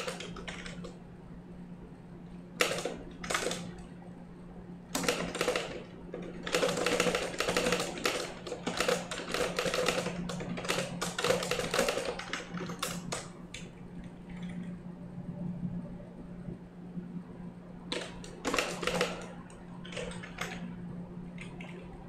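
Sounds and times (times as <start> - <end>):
typing on keyboard: 0.0 - 1.0, 2.6 - 3.8, 4.9 - 14.7, 17.9 - 20.7, 21.4 - 21.9.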